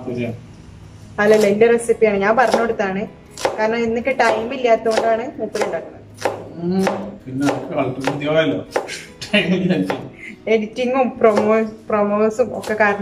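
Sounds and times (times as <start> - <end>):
knife chopping on cutting board: 1.2 - 1.6, 2.4 - 9.1, 9.8 - 10.1, 11.2 - 11.7, 12.4 - 13.0
woman talking: 1.2 - 6.0, 10.2 - 13.0.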